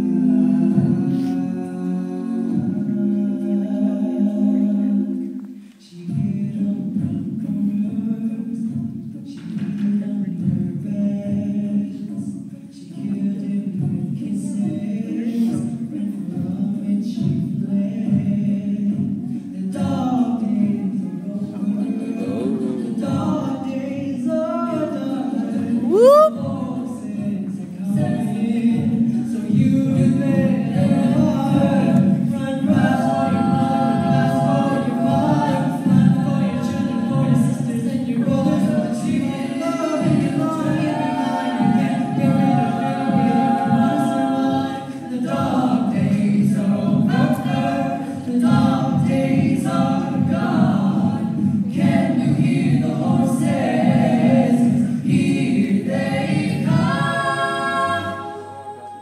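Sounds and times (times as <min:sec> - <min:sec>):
a cappella group singing in harmony: 0:00.0 - 0:59.0.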